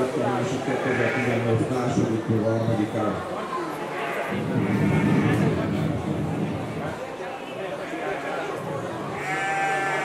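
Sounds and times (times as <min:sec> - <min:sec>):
crowd chatter in a hall: 0:00.0 - 0:10.0
sheep bleating: 0:00.8 - 0:01.4, 0:09.2 - 0:10.0.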